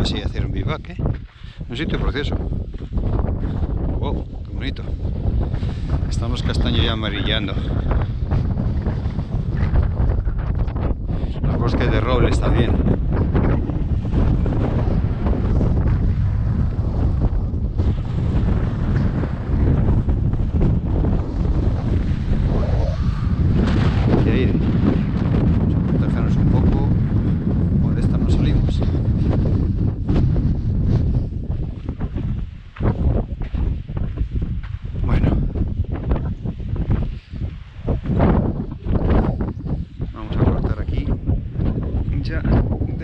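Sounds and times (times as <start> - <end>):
strong wind buffeting microphone: 0.0 - 43.0.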